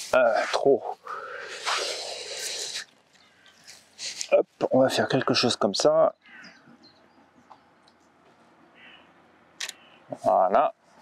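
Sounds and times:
grass rustling under a hand: 0:00.0 - 0:05.4.

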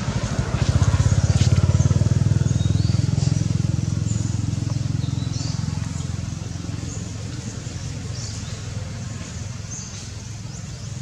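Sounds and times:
small engine running: 0:00.0 - 0:10.9.

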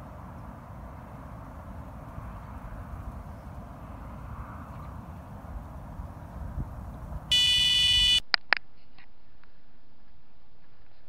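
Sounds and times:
wind buffeting microphone: 0:00.0 - 0:07.4
high-pitched electronic alarm tone: 0:07.3 - 0:08.2.

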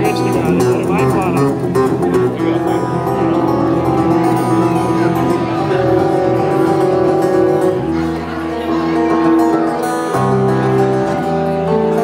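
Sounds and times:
acoustic and bass guitar playing: 0:00.0 - 0:12.0.

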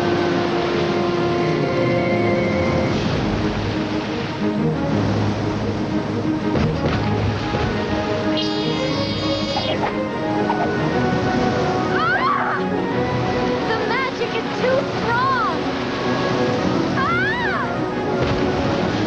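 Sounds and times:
cartoon background music: 0:00.2 - 0:19.0
short rising-and-falling cries: 0:08.3 - 0:10.9, 0:11.7 - 0:12.8.

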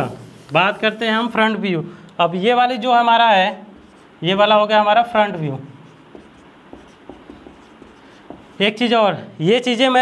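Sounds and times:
pen scratching on paper: 0:03.8 - 0:04.1, 0:05.0 - 0:08.6.

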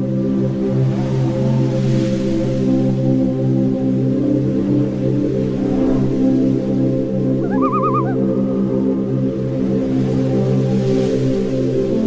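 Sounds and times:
short warbling trill: 0:07.4 - 0:08.2.

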